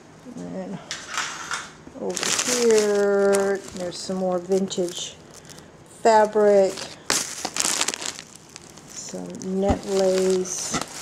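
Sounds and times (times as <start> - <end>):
plastic bag crinkling: 2.0 - 11.0.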